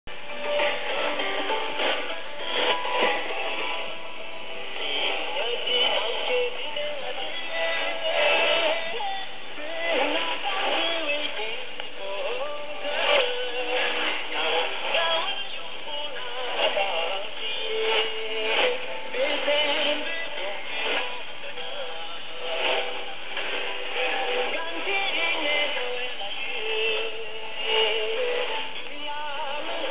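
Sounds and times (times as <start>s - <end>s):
radio music with singing: 0.0s - 29.9s.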